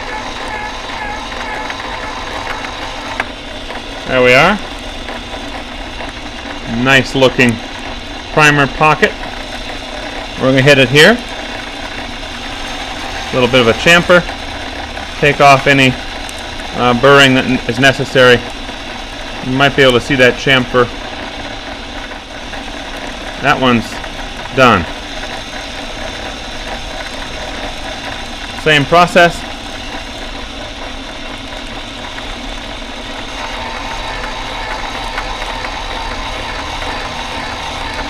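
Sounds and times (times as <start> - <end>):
electric motor running: 0.0 - 38.0.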